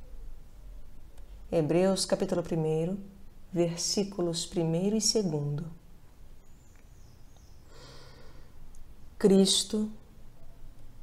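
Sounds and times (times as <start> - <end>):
woman breathing in: 7.6 - 8.6.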